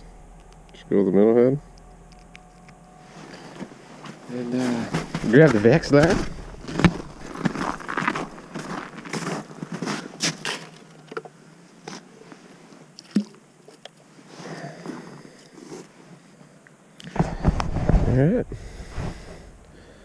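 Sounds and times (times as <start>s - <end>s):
boots crunching on snow: 4.0s - 10.4s.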